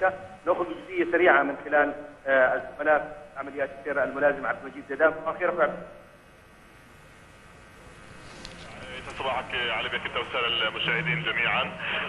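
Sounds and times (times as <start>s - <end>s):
faint broadcast line hiss: 0.0s - 12.0s.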